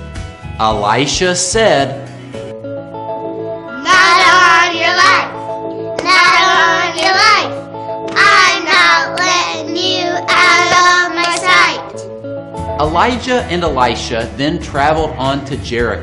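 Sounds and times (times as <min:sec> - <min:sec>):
backing music with held notes: 0:00.0 - 0:16.0
boys singing: 0:03.8 - 0:05.4, 0:06.0 - 0:07.5, 0:08.2 - 0:11.9.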